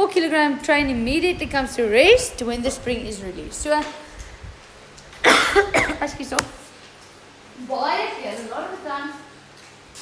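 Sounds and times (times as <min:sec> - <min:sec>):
woman coughing: 0:05.2 - 0:06.2.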